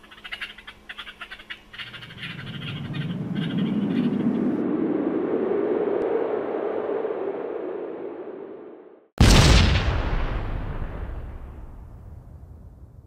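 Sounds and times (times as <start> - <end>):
rising whoosh sound effect: 2.3 - 9.1.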